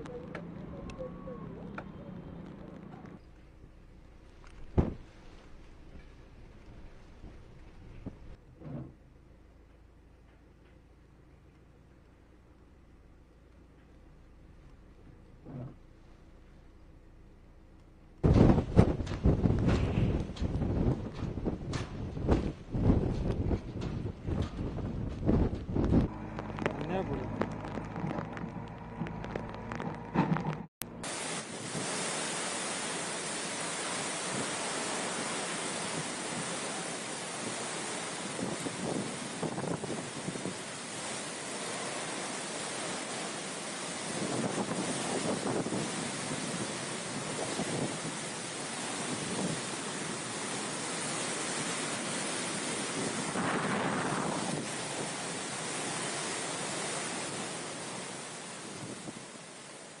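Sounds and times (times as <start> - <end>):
wind buffeting microphone: 18.2 - 30.6, 37.4 - 41.4, 43.9 - 57.6, 58.6 - 59.3
wind roaring through trees: 18.2 - 60.0.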